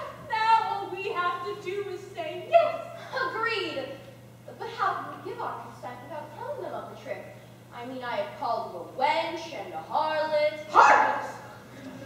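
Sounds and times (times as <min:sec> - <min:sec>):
young woman speaking: 0:00.0 - 0:11.5.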